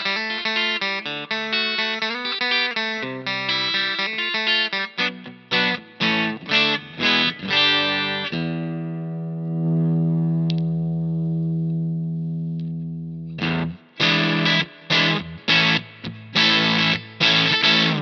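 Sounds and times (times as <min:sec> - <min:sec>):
electric guitar chords: 0:00.0 - 0:18.0.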